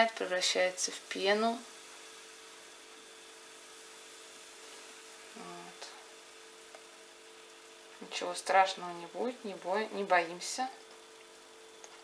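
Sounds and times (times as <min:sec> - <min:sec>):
baking soda fizzing: 0:00.0 - 0:12.0.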